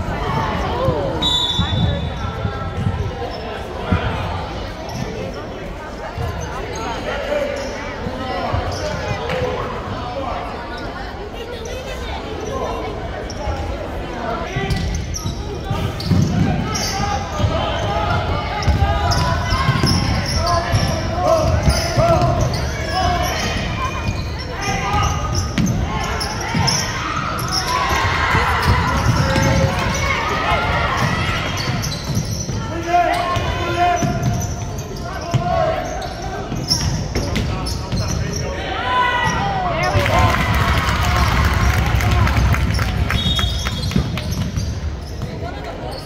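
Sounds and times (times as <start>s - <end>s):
people shouting and talking: 0.0s - 46.0s.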